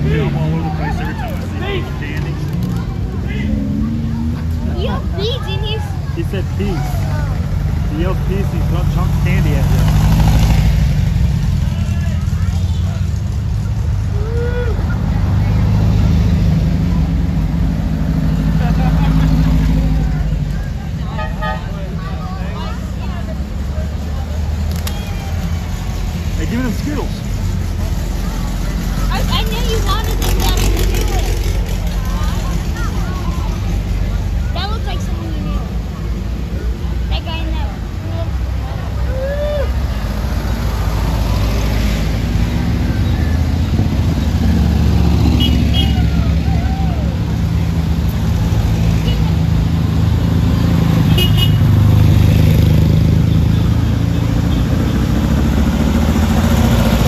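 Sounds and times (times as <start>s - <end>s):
cars passing at low speed: 0.0s - 57.0s.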